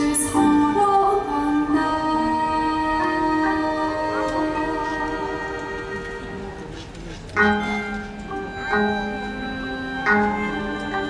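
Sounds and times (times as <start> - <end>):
woman singing: 0.0 - 6.2.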